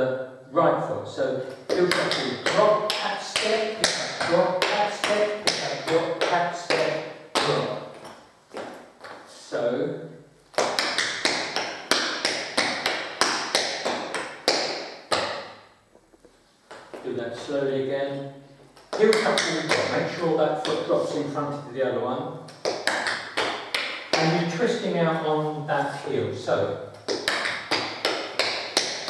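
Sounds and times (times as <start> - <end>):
person speaking: 0.0 - 8.2, 9.1 - 12.8, 17.0 - 22.8, 24.2 - 27.4
tap shoes striking tiled floor: 1.7 - 9.2, 10.6 - 17.0, 27.0 - 29.0.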